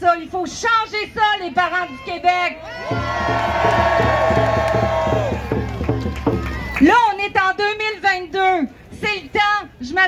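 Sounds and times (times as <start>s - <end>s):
crowd cheering: 2.7s - 6.9s.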